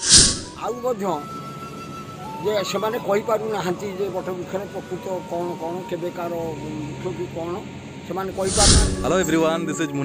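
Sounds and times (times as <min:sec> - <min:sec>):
whoosh transition effect: 0:00.0 - 0:00.6, 0:08.3 - 0:09.4
man speaking: 0:08.3 - 0:09.5.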